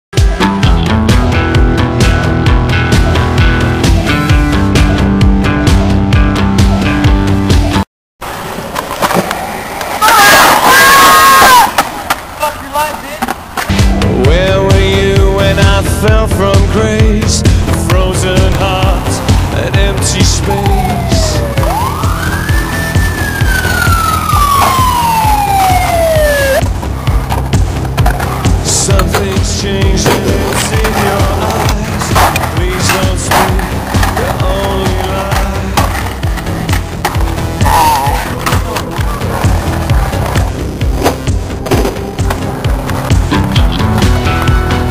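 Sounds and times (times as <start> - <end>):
skateboard wheels rolling on concrete: 6.6 - 44.9
skateboard clacks: 11.6 - 13.7, 27.0 - 44.7
music with steady beat: 13.7 - 44.9.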